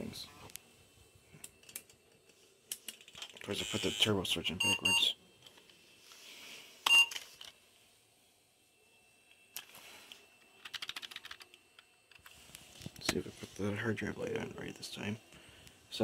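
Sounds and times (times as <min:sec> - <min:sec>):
faint high whine: 0:00.0 - 0:16.0
brief beep tone: 0:04.6 - 0:05.2.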